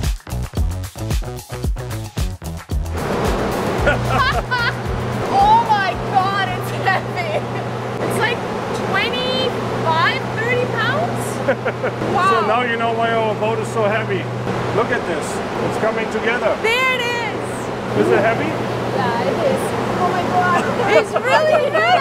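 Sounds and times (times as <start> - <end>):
low hum and rush of noise: 3.0 - 22.0
woman talking: 5.3 - 11.4, 12.1 - 12.5, 16.6 - 17.7, 18.9 - 22.0.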